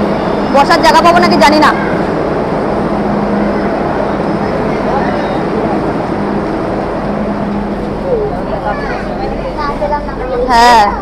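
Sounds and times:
faint crowd voices: 0.0s - 11.0s
metro train running noise: 0.0s - 11.0s.

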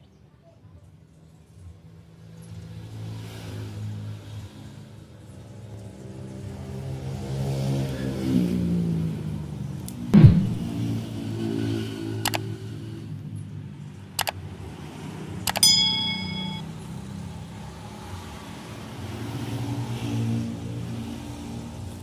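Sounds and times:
sharp clicks: 12.2s - 12.4s, 15.5s - 16.6s
metallic ring: 15.5s - 16.7s.

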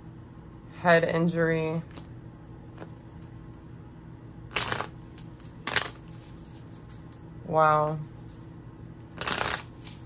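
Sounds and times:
deck of cards shuffling: 4.5s - 7.2s, 9.2s - 10.0s.

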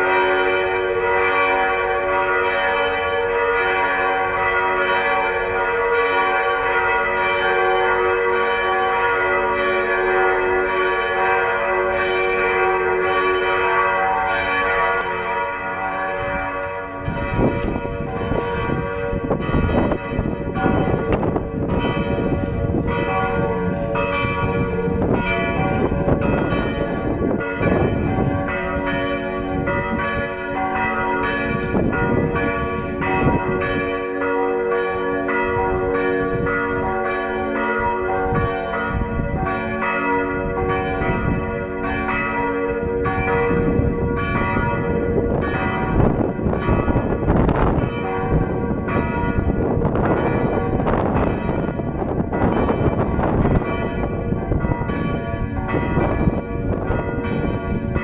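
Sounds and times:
church bells pealing: 0.0s - 58.0s.

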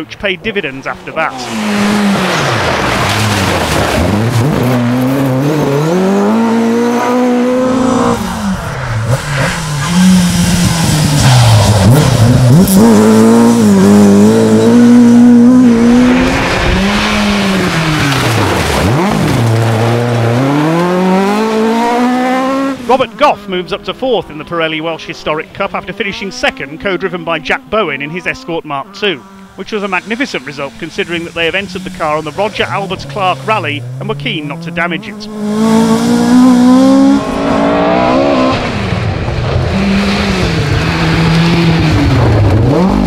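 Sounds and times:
rally car engine revving: 0.4s - 43.0s.

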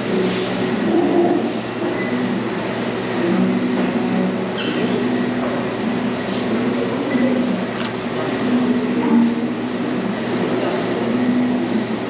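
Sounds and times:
rumbling cafe noise: 0.0s - 12.0s.

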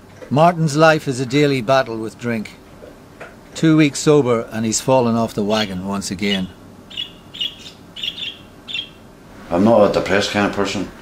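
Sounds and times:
small birds chirping: 5.5s - 9.1s.

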